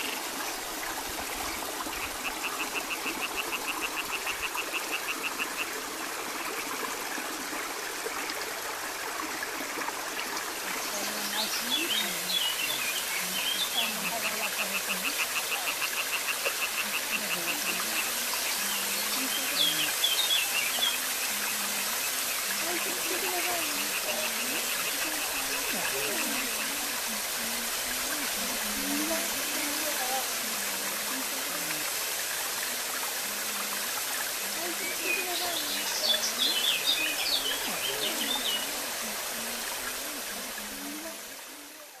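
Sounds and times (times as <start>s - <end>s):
river water rushing: 0.0s - 42.0s.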